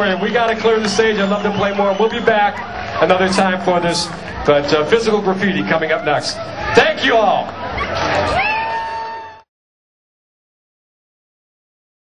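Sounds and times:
crowd and hall noise: 0:00.0 - 0:09.5.

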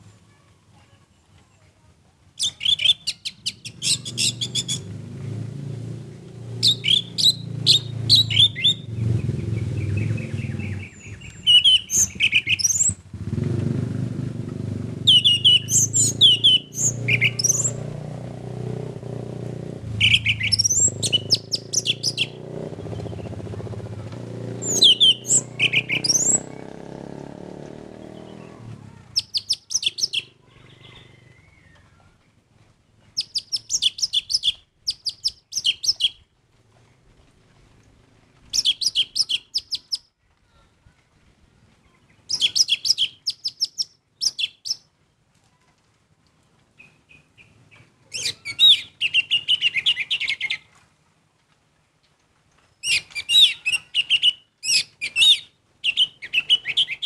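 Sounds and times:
thrush whistling song: 0:02.4 - 0:04.9, 0:06.6 - 0:13.0, 0:15.1 - 0:17.9, 0:20.0 - 0:23.4, 0:24.6 - 0:26.7, 0:29.2 - 0:31.8, 0:33.2 - 0:36.2, 0:38.5 - 0:40.1, 0:42.3 - 0:44.9, 0:48.2 - 0:50.6, 0:52.8 - 0:57.0.

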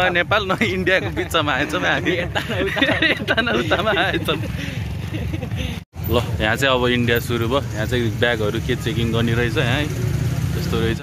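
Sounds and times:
vehicle engine rumble: 0:00.0 - 0:11.0.

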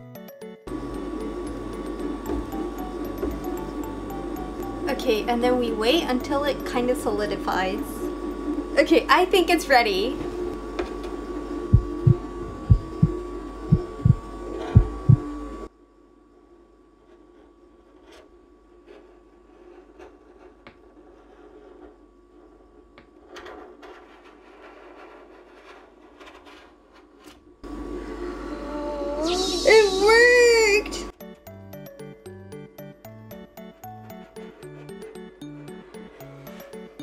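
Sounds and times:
ice cream machine humming: 0:00.0 - 0:15.7, 0:27.6 - 0:37.0
low thumps: 0:11.7 - 0:14.2.

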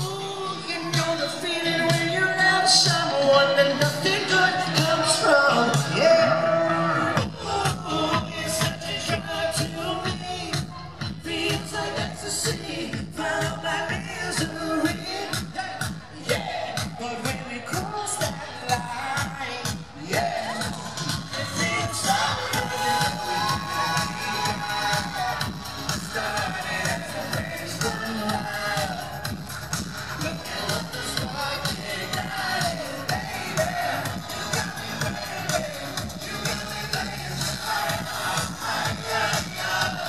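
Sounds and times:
audience crowd: 0:00.0 - 0:40.0
live pop music: 0:00.0 - 0:40.0.

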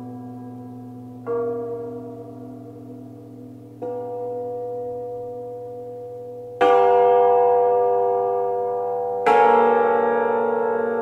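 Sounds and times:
cimbalom chords ringing: 0:00.0 - 0:11.0.

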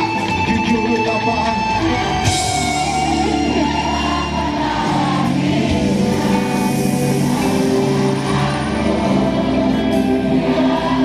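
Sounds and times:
live pop-rock band: 0:00.0 - 0:11.0
crowd singing along: 0:01.8 - 0:11.0.

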